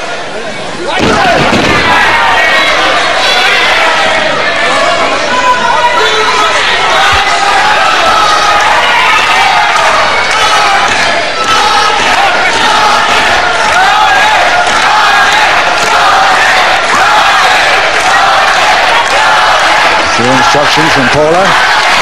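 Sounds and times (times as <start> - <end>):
crowd shouting: 0.0 - 22.0.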